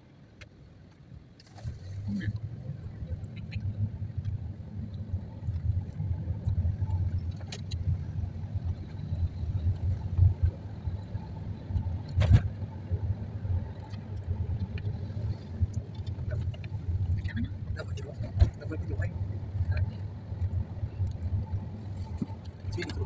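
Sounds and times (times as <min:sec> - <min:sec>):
car road and engine rumble: 0:00.0 - 0:23.0.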